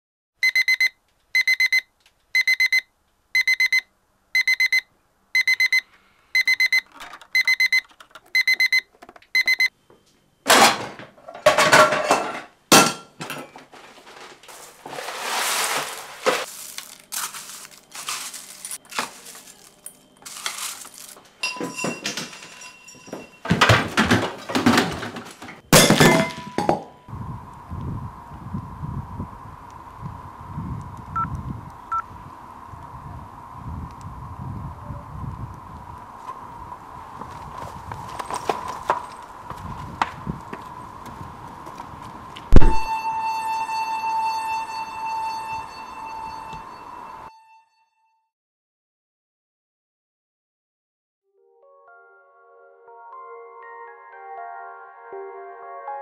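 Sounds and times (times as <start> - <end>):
digital alarm clock beeping: 0.4 - 9.7
kitchen clatter and knocks: 10.5 - 16.5, 21.4 - 27.0
cereal poured into bowl: 14.5 - 21.2.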